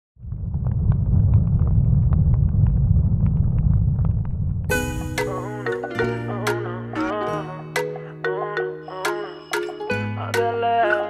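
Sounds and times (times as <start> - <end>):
fire crackling and popping: 0.2 - 4.7
fire rumbling: 0.2 - 4.8.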